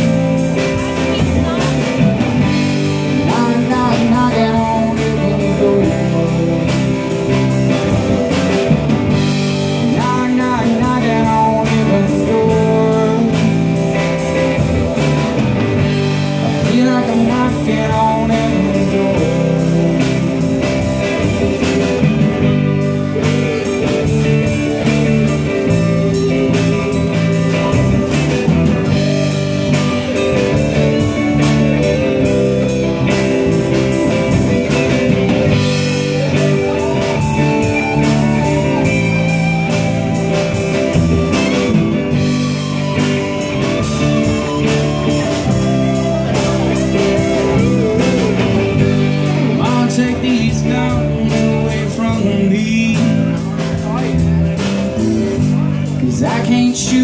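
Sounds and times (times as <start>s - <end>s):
live rock band playing: 0.0s - 57.0s
pitch-bending melody line: 0.0s - 57.0s.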